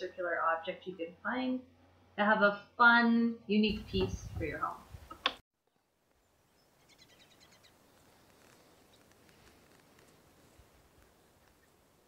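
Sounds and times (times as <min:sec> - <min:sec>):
faint outdoor ambience: 0:00.0 - 0:12.0
high bird chirps: 0:06.6 - 0:07.8.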